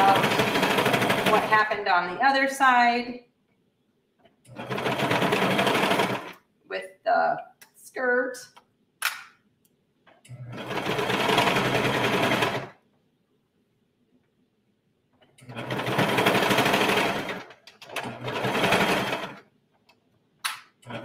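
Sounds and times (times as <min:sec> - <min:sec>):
serger machine running: 0:00.0 - 0:01.6.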